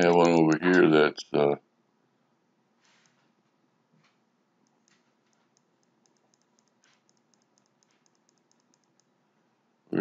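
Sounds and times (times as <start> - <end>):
rapid mouse or keyboard clicking: 4.6 - 9.2.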